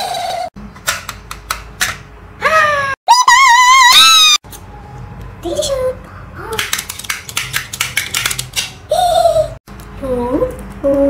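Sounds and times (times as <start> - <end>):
sharp plastic toy clicks: 6.6 - 8.8.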